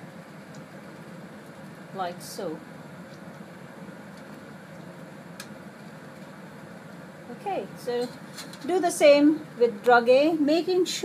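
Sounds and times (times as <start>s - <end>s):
cabinet fan airflow: 0.0s - 11.0s.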